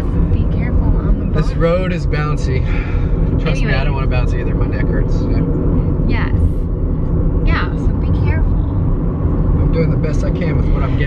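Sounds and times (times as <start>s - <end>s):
voices: 0.0s - 6.6s, 7.4s - 8.9s, 9.6s - 11.0s
road and tyre rumble: 0.0s - 11.0s.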